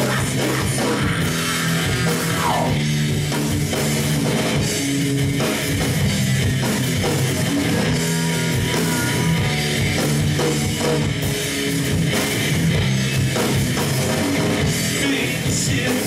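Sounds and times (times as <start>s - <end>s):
rock band playing: 0.0s - 16.0s.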